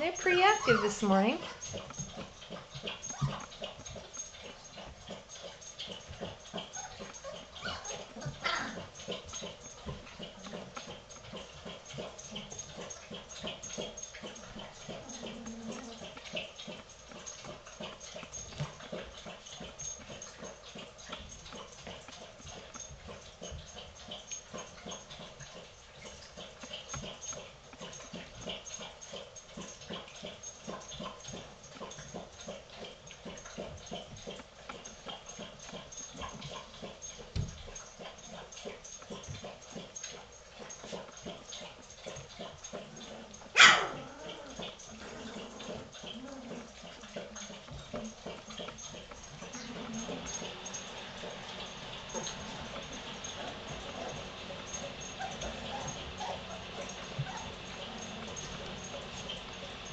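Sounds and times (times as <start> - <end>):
puppies whimpering and squeaking: 0.0 - 32.5, 35.1 - 59.9
puppies scrabbling on bedding: 0.0 - 59.9.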